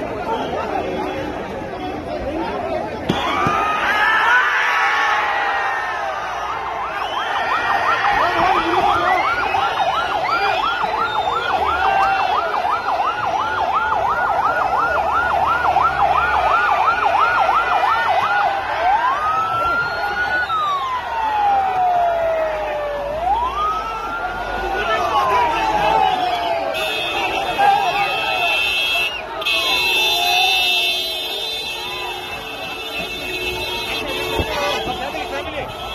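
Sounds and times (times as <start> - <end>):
crowd chattering and shouting: 0.0 - 35.9
ambulance siren yelp and wail: 3.1 - 35.9.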